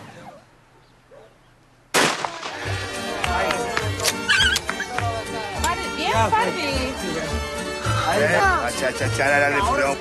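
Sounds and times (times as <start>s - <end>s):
shotgun shot: 1.9s - 2.8s
music: 2.5s - 10.0s.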